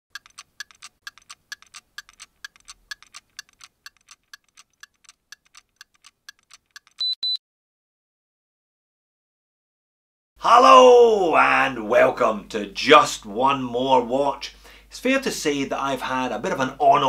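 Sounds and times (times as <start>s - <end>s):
watch ticking: 0.1s - 7.2s
short loud beeps: 7.0s - 7.4s.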